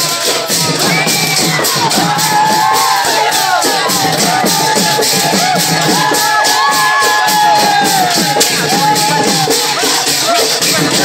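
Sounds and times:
crowd singing dance song: 0.0 - 11.0.

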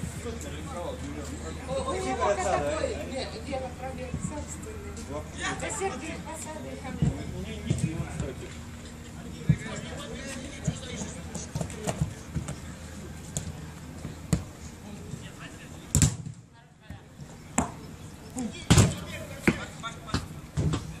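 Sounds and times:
football kick thuds: 15.9 - 16.4, 18.7 - 21.0
distant players shouting: 17.6 - 21.0.

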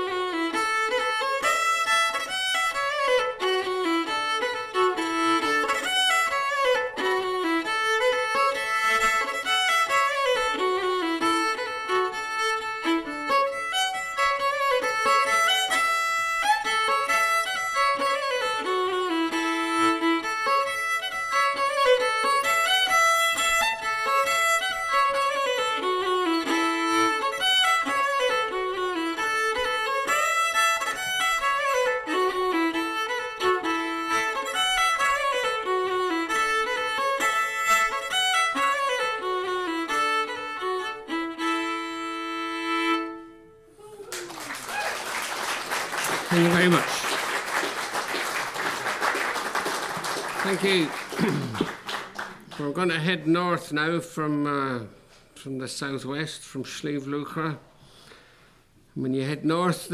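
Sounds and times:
solo fiddle playing a polka: 0.0 - 43.8, 45.7 - 54.9.

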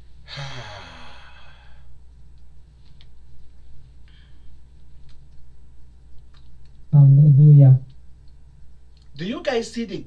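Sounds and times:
steady low hum: 0.0 - 10.0
man sighing: 0.3 - 1.9.

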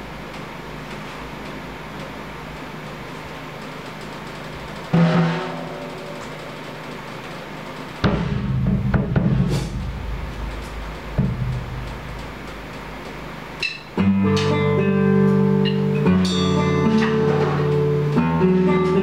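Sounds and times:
drum hits ringing: 4.9 - 6.6, 8.0 - 17.2.

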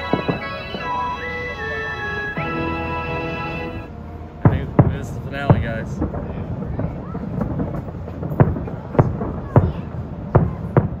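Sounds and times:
fireworks booms: 0.0 - 1.0, 4.4 - 11.0
distant fireworks rumble: 0.0 - 11.0.

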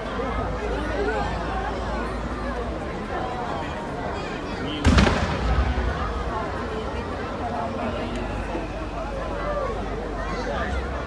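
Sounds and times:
crowd chatter: 0.0 - 11.0
firework bang: 4.8 - 7.6.

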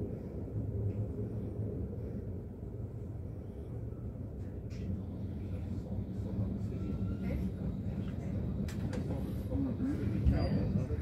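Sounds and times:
train rumbling on track: 0.0 - 11.0.

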